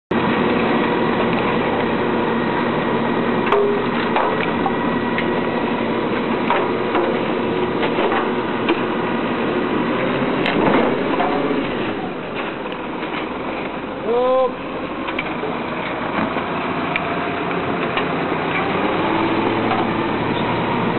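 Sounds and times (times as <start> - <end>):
garbage truck running: 0.1 - 20.9
sharp knocks and clanks: 3.4 - 4.8, 6.4 - 8.9, 10.5 - 13.3.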